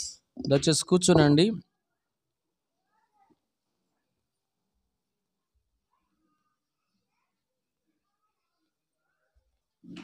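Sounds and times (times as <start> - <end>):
faint high-pitched cry: 2.8 - 3.5, 5.8 - 9.4.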